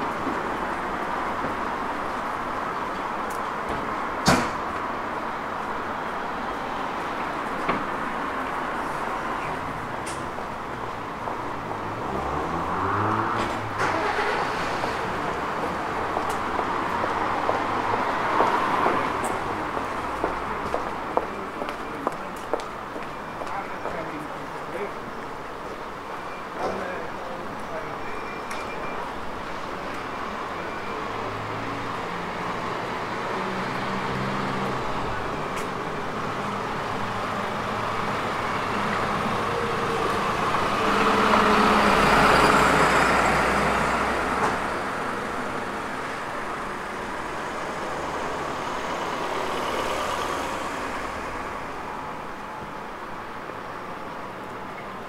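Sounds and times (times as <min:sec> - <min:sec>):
street traffic: 0:00.0 - 0:55.0.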